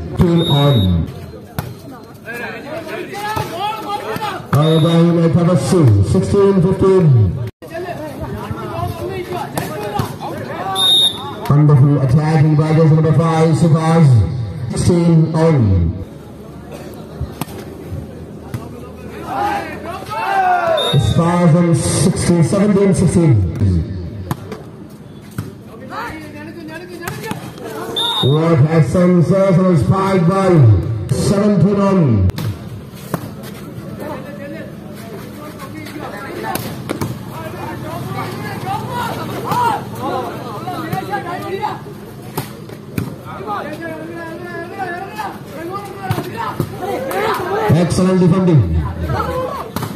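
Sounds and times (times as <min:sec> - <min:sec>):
crowd background: 0:00.0 - 0:49.9.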